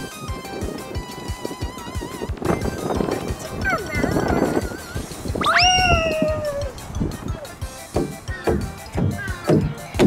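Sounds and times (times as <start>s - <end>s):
child's high-pitched squeal: 5.4s - 6.7s.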